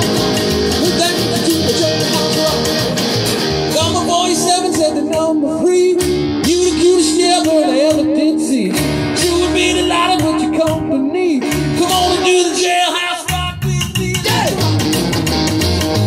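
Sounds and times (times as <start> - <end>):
electric guitar lead: 0.0 - 16.0
strummed acoustic guitar: 0.0 - 16.0
upright bass: 0.0 - 16.0
rhythmic sharp clicks: 4.4 - 10.8, 13.3 - 16.0.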